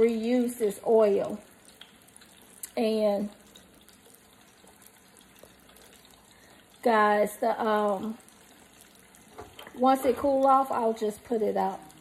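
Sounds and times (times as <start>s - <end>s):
fries sizzling in hot oil: 0.0s - 12.0s
tiny oil crackles: 0.0s - 12.0s.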